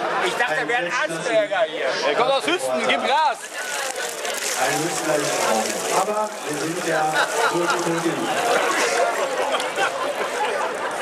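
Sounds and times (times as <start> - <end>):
voices talking: 2.0 - 11.0
water splashing from bucket: 3.4 - 9.1.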